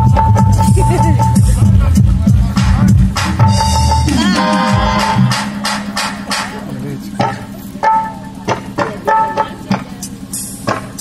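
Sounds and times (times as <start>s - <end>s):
drum-like strikes: 0.0s - 11.0s
held musical note: 3.4s - 9.7s.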